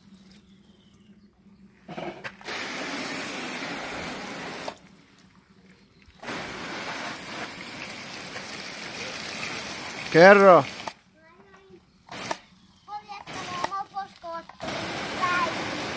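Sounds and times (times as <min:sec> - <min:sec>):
hose nozzle spraying water: 0:02.4 - 0:04.9, 0:06.2 - 0:11.0, 0:12.1 - 0:12.4, 0:13.2 - 0:15.9.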